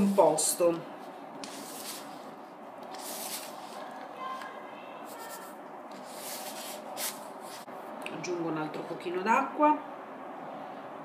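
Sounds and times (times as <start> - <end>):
hands mixing dough in a bowl: 0.0 - 7.7.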